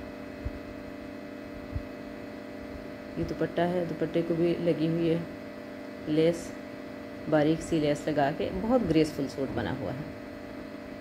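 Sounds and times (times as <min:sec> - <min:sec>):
electrical hum: 0:00.0 - 0:11.0
soft low thumps: 0:00.4 - 0:00.7, 0:01.6 - 0:02.0.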